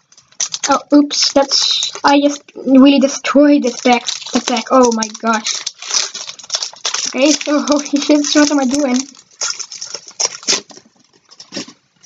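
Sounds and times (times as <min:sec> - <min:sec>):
foil wrapper and cards crinkling: 0:00.0 - 0:12.0.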